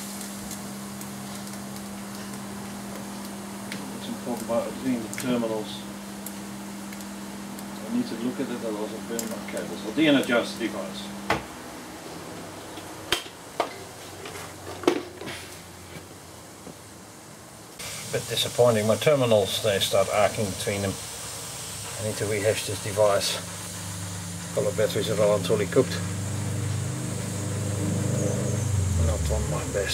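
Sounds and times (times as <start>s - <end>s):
faint steady hiss: 0.0s - 13.4s, 14.8s - 29.9s
low hum: 23.4s - 29.9s.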